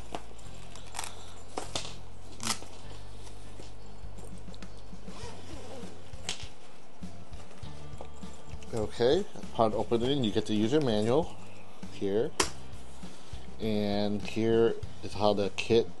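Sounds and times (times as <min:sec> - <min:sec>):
handling of case: 0:00.0 - 0:13.6
soft background music: 0:00.0 - 0:16.0
zipper being pulled open: 0:00.5 - 0:06.6.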